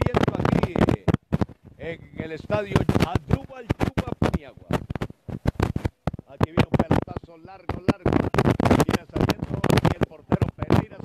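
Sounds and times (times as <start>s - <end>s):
sports commentator speaking: 0.0s - 1.1s, 1.8s - 4.8s, 6.3s - 11.0s
sharp crackling clicks: 0.0s - 11.0s.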